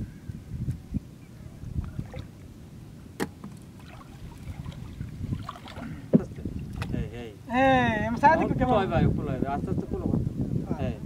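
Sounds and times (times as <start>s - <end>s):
river water sloshing and splashing: 1.8s - 2.5s, 3.2s - 7.0s
short sharp splashes: 3.2s - 7.0s.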